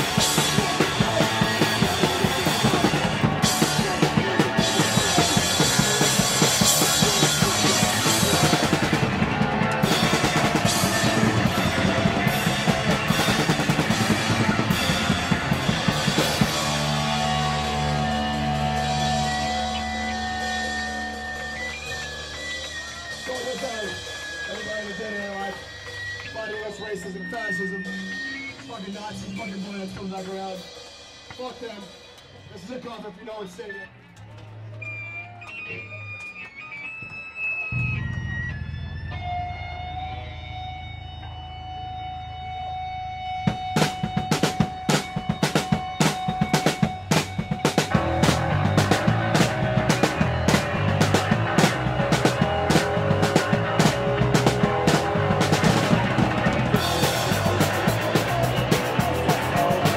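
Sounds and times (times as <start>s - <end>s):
fast dense drumming: 0.0s - 21.6s, 43.5s - 59.9s
held guitar and bass note: 0.0s - 22.6s, 37.7s - 59.9s
punk band playing live: 0.0s - 33.0s, 37.7s - 59.9s.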